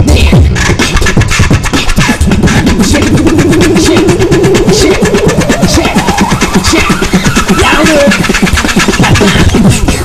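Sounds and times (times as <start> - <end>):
beatboxing vocal drum sounds: 0.0 - 10.0
wavering low vocal tone: 1.6 - 8.2.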